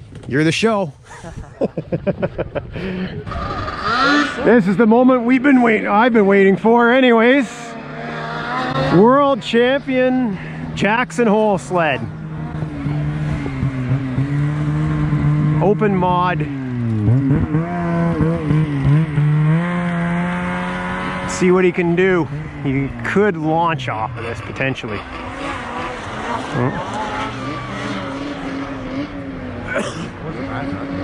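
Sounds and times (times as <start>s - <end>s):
snowmobile engine running: 1.2s - 31.0s.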